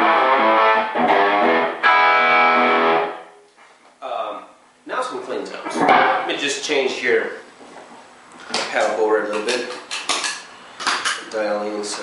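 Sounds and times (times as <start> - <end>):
guitar string notes ringing: 0.0 - 3.4, 5.7 - 6.4.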